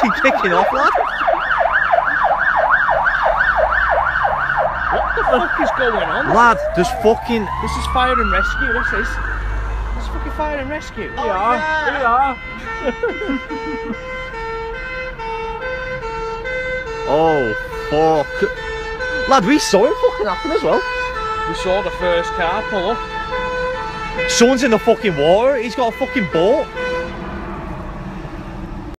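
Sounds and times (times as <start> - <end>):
person laughing: 0.0 - 2.5, 4.9 - 5.7, 11.2 - 14.2, 19.6 - 21.0
traffic noise: 0.0 - 29.0
two-tone fire engine siren: 0.0 - 29.0.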